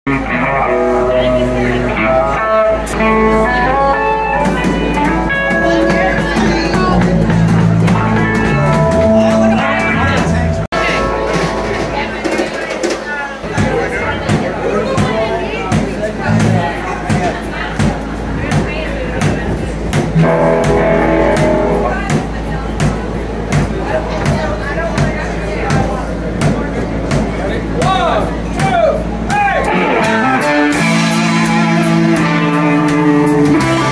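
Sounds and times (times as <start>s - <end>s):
steady bass: 0.1s - 12.3s, 13.6s - 33.9s
electric guitar melody: 0.1s - 12.6s, 20.1s - 23.3s, 29.1s - 33.9s
live band playing: 0.1s - 26.2s, 26.8s - 33.9s
loud crowd chatter: 0.1s - 33.9s
drum kit steady beat: 2.8s - 33.9s.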